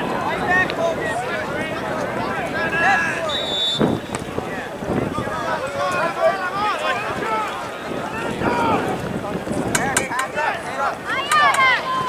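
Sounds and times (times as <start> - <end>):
people shouting: 0.0 - 9.1, 9.8 - 12.0.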